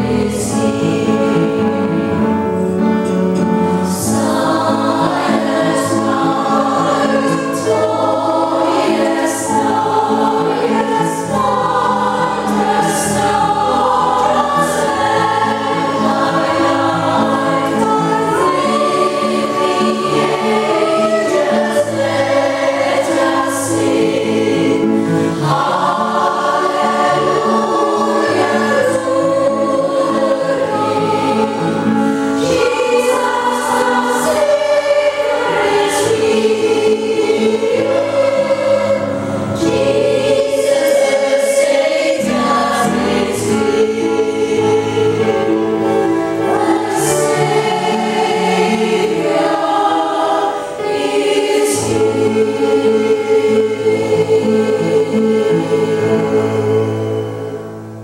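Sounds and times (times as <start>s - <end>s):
piano accompaniment: 0.0s - 58.0s
women's choir singing: 0.0s - 58.0s.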